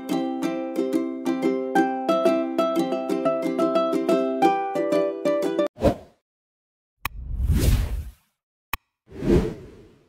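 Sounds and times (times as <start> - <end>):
whoosh sound effect: 7.2 - 8.2.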